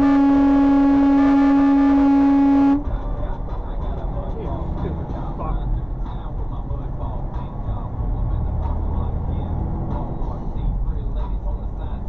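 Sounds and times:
vehicle horn blast: 0.0 - 2.9
road and engine rumble: 0.0 - 12.0.

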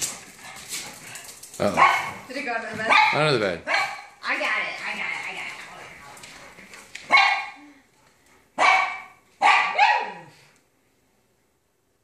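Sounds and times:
dog barking: 1.6 - 4.2, 7.1 - 7.6, 8.6 - 10.4.

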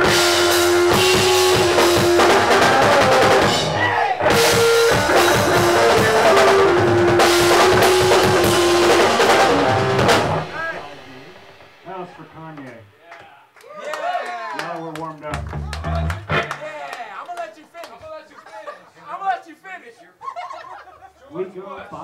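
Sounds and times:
live rock band playing: 0.0 - 12.4, 15.3 - 16.6.

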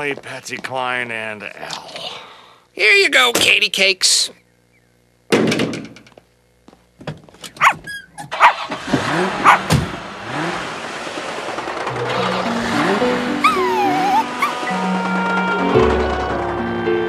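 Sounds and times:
background music: 12.0 - 17.0.

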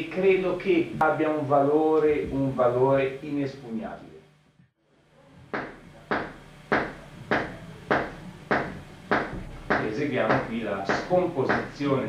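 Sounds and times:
muted electric bass notes: 0.0 - 4.4, 5.0 - 12.0.

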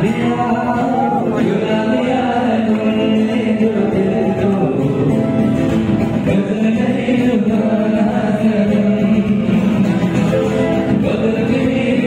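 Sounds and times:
cajon: 0.0 - 12.0
keyboards: 0.0 - 12.0
men singing together: 0.0 - 12.0.

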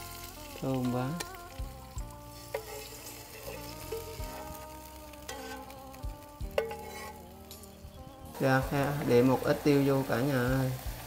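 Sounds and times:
hot fat sizzling in broth: 0.0 - 11.0
metal ladle clinks: 6.6 - 7.1.

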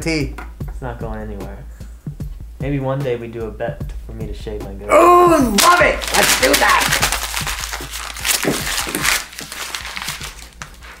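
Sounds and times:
paper crumpling: 5.6 - 11.0.

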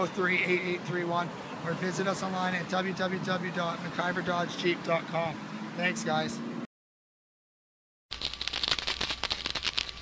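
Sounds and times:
rapid dry crackling ticks: 8.1 - 10.0.

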